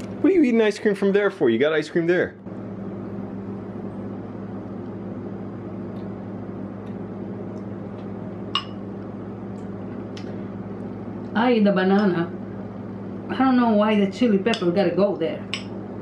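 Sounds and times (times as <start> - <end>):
low electrical hum: 0.0 - 16.0.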